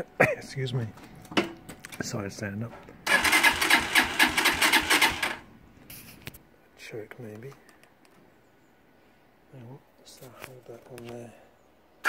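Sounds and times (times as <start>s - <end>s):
motorcycle starter cranking engine: 3.0s - 5.5s.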